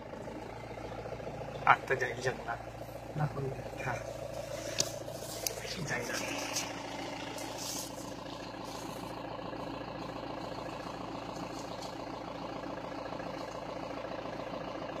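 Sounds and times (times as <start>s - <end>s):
vehicle engine idling: 0.0s - 15.0s.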